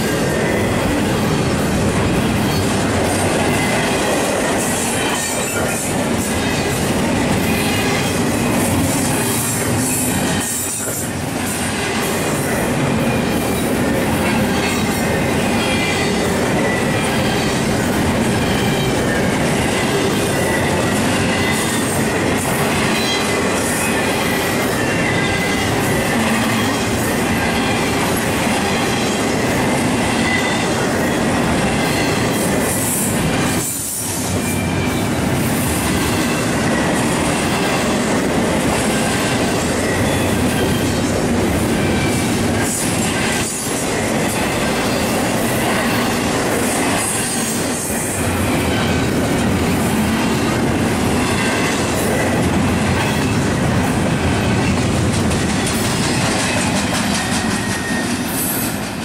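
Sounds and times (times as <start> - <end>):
train wheels on rails: 0.0 - 59.0
high wheel squeal: 18.4 - 28.0, 57.1 - 58.7.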